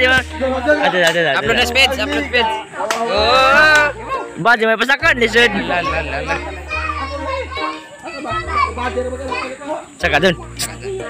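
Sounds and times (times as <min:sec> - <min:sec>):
background music with low bass: 0:00.0 - 0:11.0
children shouting and chattering: 0:00.0 - 0:11.0.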